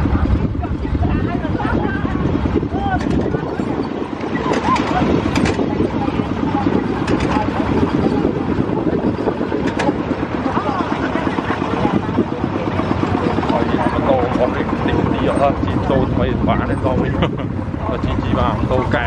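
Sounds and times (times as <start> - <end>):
tractor engine running: 0.0 - 19.0
voices chattering: 0.0 - 19.0.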